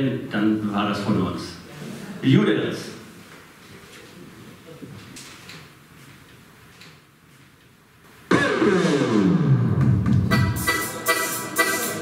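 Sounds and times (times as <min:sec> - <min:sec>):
accordion note sweeping down: 0:08.3 - 0:12.0
rhythmic accordion chords: 0:08.3 - 0:12.0.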